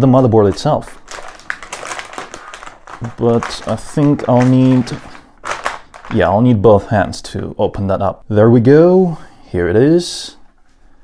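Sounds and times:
plastic bag crinkling: 0.0s - 6.4s.

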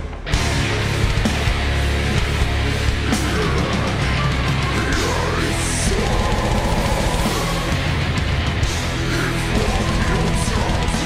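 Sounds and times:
death metal band playing: 0.0s - 11.0s.

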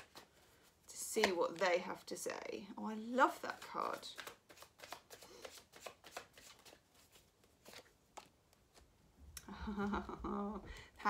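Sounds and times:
cards rustling and flicking: 0.0s - 1.8s, 3.2s - 9.0s.

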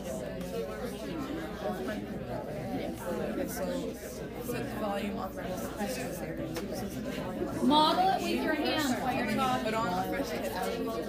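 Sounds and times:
students chattering indistinctly: 0.0s - 11.0s.

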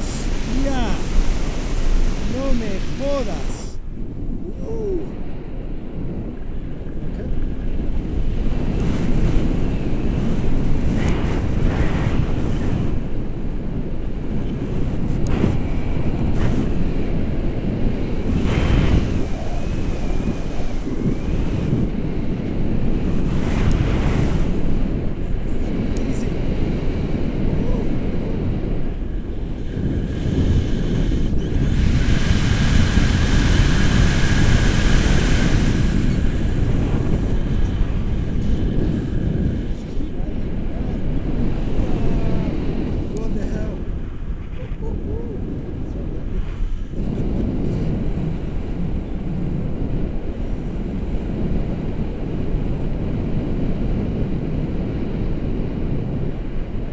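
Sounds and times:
high hiss with thin whistle: 0.0s - 3.8s
wind buffeting microphone: 0.0s - 56.9s.

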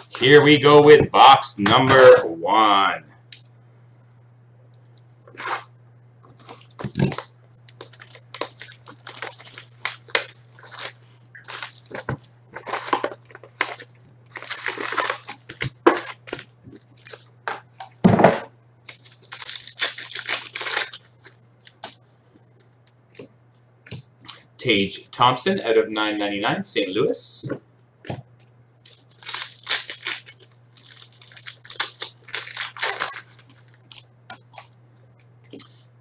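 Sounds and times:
card wrappers crinkling: 0.0s - 0.4s, 6.3s - 18.0s, 18.8s - 22.8s, 28.8s - 34.8s
low steady hum: 0.0s - 36.0s
wrappers tearing: 5.3s - 5.7s, 6.3s - 17.6s, 18.9s - 22.0s, 28.8s - 34.8s.

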